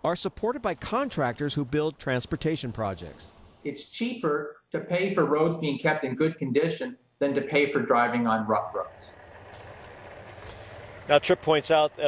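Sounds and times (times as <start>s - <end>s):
distant street traffic rumble: 0.0s - 3.6s, 8.3s - 12.0s.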